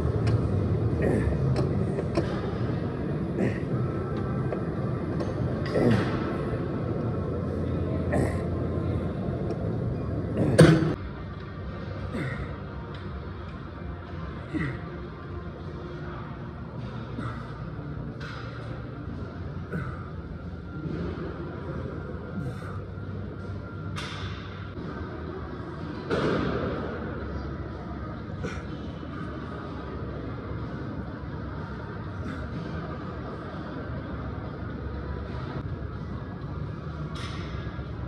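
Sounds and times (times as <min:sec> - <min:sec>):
gym room noise: 0:00.0 - 0:38.0
steady background noise: 0:00.0 - 0:38.0
man grunting: 0:00.9 - 0:01.7, 0:03.3 - 0:03.9, 0:05.6 - 0:06.3, 0:08.0 - 0:08.6.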